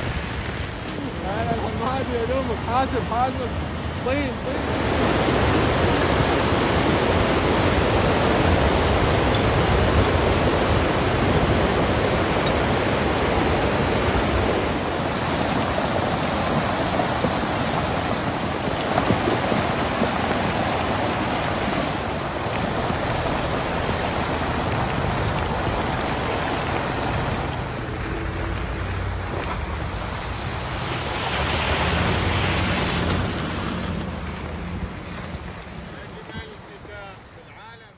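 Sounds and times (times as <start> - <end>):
wind buffeting microphone: 0.0 - 37.1
flood water rushing over rocks: 0.0 - 37.9.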